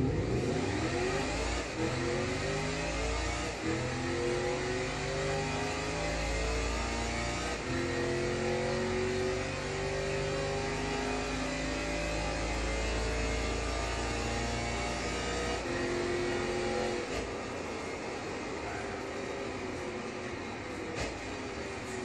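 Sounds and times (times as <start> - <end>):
car engine accelerating hard: 0.0 - 22.0.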